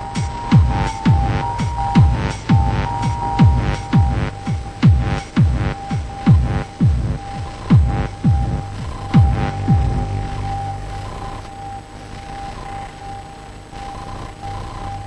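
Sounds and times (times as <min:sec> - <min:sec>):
deep kick drums: 0:00.0 - 0:10.9
high electronic drone: 0:00.0 - 0:15.0.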